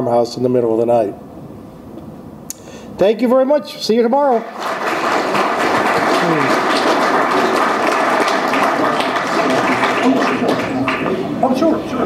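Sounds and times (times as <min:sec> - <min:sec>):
audience applauding: 0:04.3 - 0:11.8.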